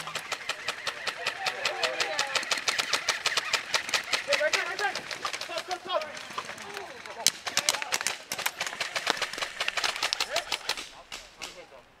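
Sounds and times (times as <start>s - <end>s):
airsoft guns firing: 0.0s - 11.7s
voices: 0.0s - 12.0s.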